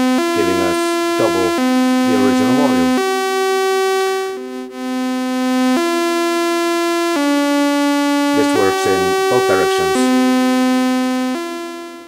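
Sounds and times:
sawtooth synthesizer notes: 0.0 - 7.4, 8.2 - 11.0.

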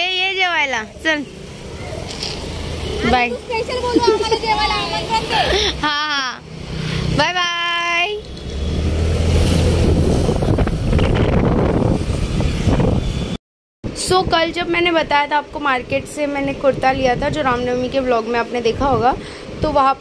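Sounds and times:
voices: 0.0 - 8.3.

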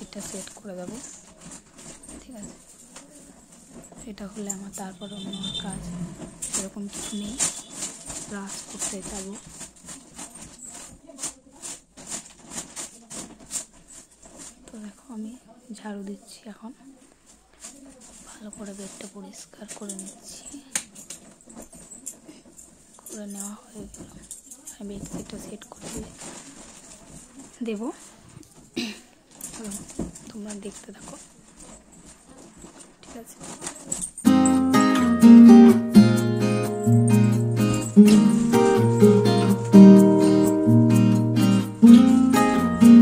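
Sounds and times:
person talking: 0.0 - 1.2
broom sweeping floor: 6.2 - 14.9, 29.6 - 43.0.

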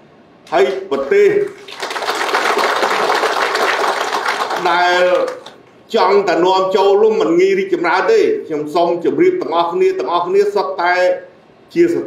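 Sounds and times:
man's voice: 0.5 - 1.6
audience clapping: 0.5 - 5.8.

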